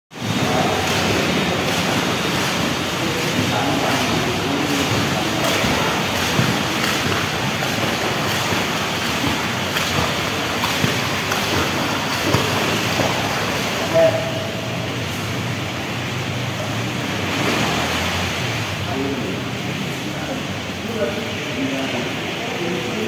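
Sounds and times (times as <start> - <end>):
rushing water: 0.1 - 23.0
indistinct voices: 0.2 - 15.0.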